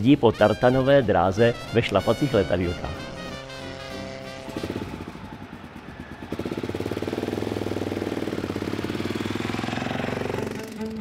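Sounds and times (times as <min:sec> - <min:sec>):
piston aircraft engine in flight: 0:01.4 - 0:11.0.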